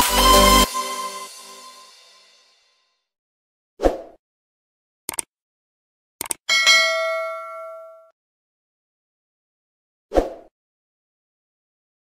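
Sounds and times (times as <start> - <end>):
quick clicks: 5.1 - 5.3, 6.2 - 6.4
notification bell ding: 6.5 - 8.1.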